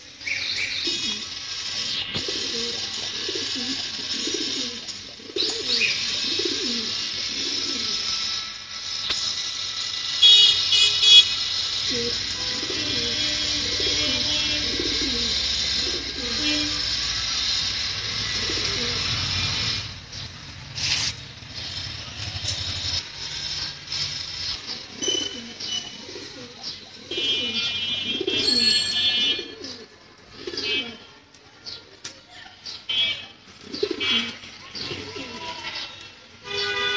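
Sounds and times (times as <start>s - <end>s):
loud steady background noise: 0.0s - 36.9s
pigeons cooing: 0.6s - 10.4s, 11.5s - 31.1s, 33.5s - 36.1s.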